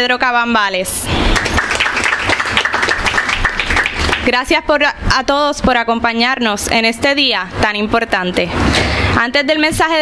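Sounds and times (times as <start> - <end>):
audience applause: 1.4 - 4.3.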